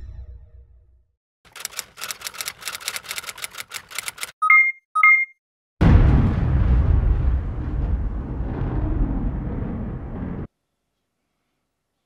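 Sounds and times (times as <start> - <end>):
short electronic beeps: 4.4 - 5.4
deep boom: 5.8 - 10.5.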